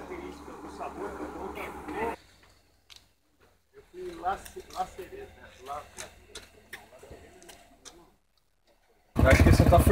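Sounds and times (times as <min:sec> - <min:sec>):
faint distant voices: 0:00.0 - 0:09.9.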